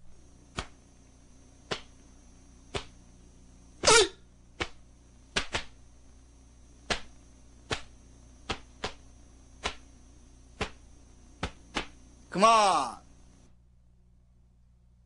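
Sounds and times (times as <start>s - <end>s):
uniform snapping: 0.5s - 0.8s, 1.7s - 1.9s, 2.7s - 3.0s, 4.6s - 5.8s, 6.8s - 7.1s, 7.7s - 9.0s, 9.6s - 9.9s, 10.6s - 10.8s, 11.4s - 12.0s.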